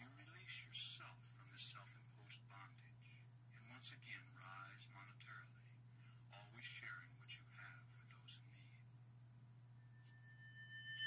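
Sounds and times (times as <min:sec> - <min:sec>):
person whispering: 0:00.0 - 0:08.8
steady low hum: 0:00.0 - 0:11.0.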